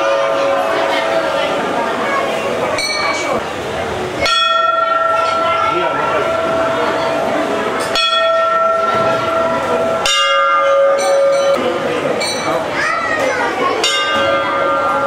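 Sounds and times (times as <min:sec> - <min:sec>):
crowd chatter: 0:00.0 - 0:15.0
temple bells ringing: 0:00.0 - 0:15.0.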